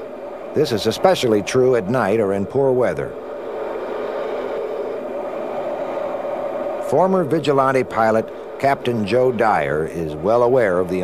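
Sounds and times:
jet engine noise: 0.0s - 11.0s.

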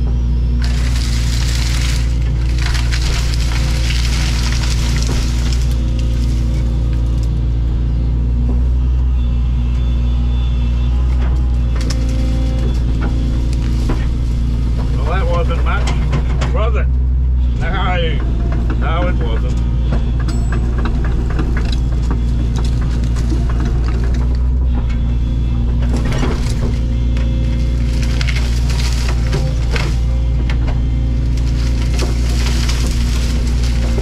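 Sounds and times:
excavator diesel engine droning: 0.0s - 34.0s.

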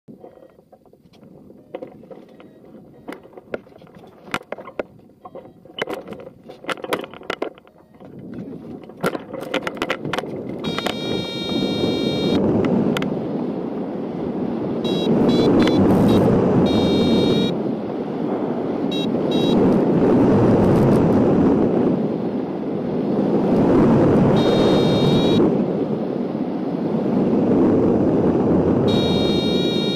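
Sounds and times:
wind rushing over microphone: 1.0s - 29.9s
short beeps: 10.6s - 12.4s, 14.8s - 17.6s, 18.9s - 19.7s, 24.4s - 25.4s, 28.9s - 29.9s
variometer electronic tone: 10.6s - 12.4s, 14.8s - 17.6s, 18.9s - 19.8s, 24.3s - 25.5s, 28.8s - 29.9s.

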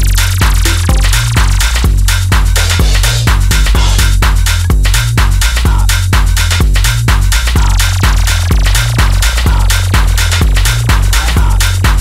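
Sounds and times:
deep bass line: 0.0s - 12.0s
electronic dance music: 0.0s - 12.0s
hi-hat percussion: 0.0s - 12.0s
kick drum: 0.0s - 12.0s.

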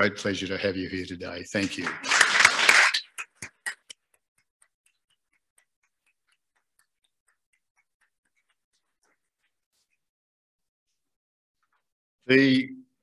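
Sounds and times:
audience applause: 1.6s - 3.8s.

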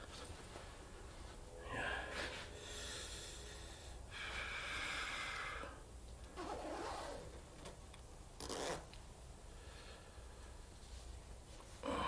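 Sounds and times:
zipper pulled up: 6.4s - 7.4s, 8.4s - 8.9s.

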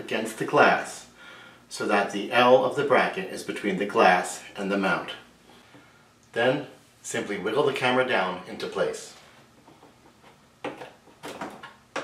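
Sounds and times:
plastic knocks and rattles: 9.6s - 12.0s.

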